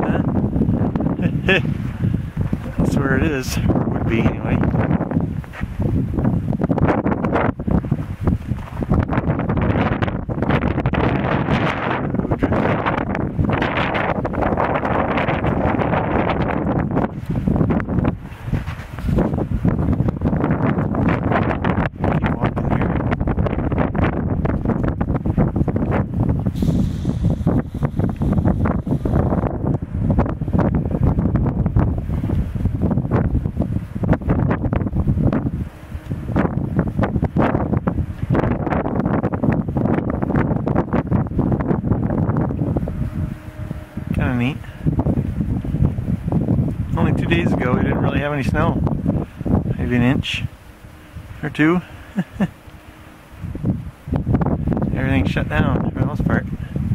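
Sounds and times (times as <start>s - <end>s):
wind buffeting microphone: 0.0s - 56.9s.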